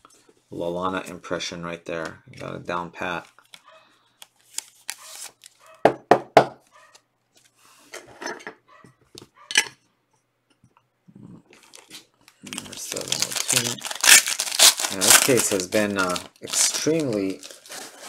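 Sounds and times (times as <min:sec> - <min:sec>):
foil pack crinkling and tearing: 0:04.3 - 0:05.6, 0:11.6 - 0:18.0.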